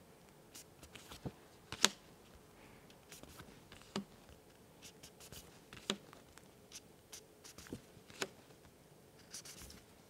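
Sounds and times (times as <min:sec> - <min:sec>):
cards rubbing and sliding: 0:03.1 - 0:04.0, 0:09.2 - 0:09.8.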